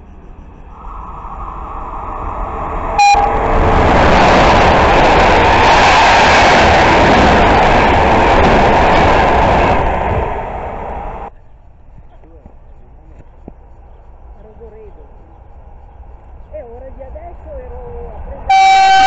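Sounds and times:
train carriages rushing past: 0.7s - 11.3s
train horn blast: 3.0s - 4.3s, 18.5s - 19.0s.

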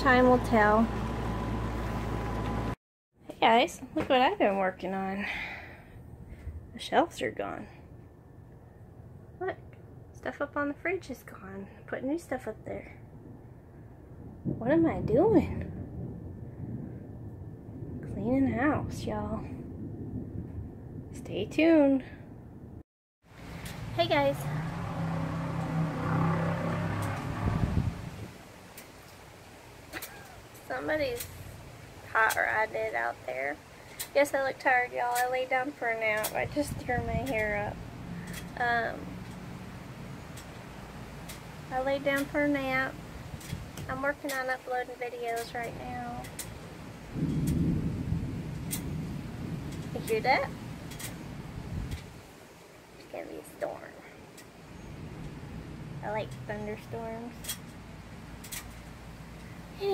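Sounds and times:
car engine driving by: 0.0s - 2.8s, 23.4s - 28.3s
thunder rumbling: 12.6s - 59.9s.

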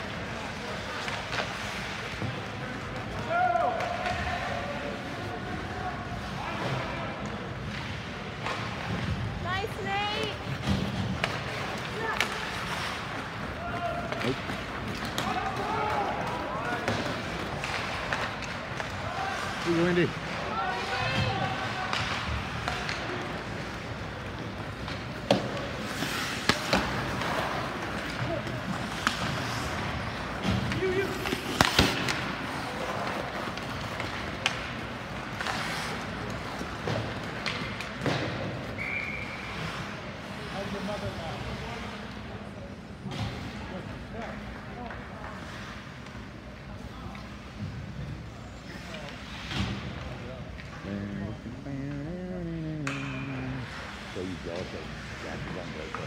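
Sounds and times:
hockey sticks and puck knocks: 10.4s - 39.2s.

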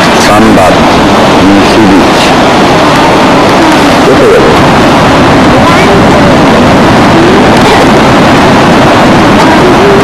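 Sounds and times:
wind on microphone: 0.0s - 10.0s.

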